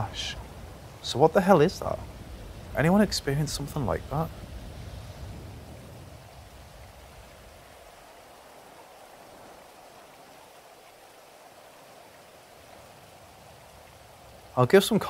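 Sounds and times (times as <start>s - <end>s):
faint steady rain: 0.0s - 15.0s.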